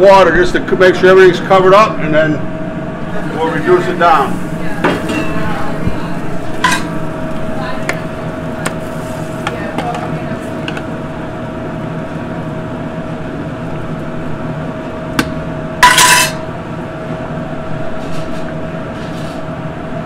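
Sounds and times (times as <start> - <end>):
steady hum: 0.0 - 20.0
metal clatter: 15.8 - 16.4.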